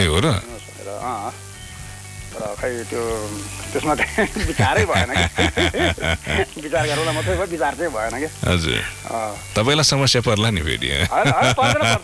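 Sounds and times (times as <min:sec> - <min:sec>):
steady line hiss: 0:00.0 - 0:12.0
person talking over telephone: 0:06.4 - 0:08.9.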